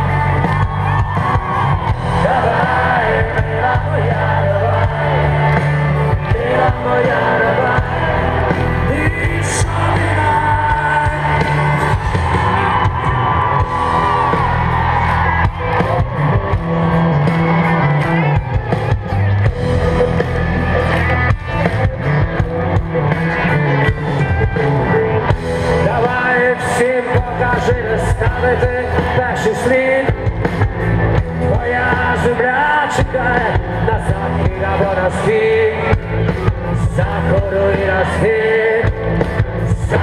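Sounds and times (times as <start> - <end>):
live rock band with singing: 0.0 - 40.0.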